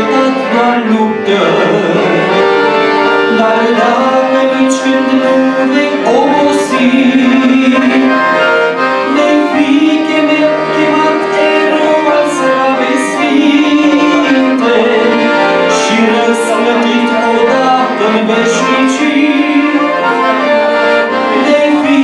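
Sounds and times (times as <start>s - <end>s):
accordion playing hymn tune: 0.0s - 22.0s.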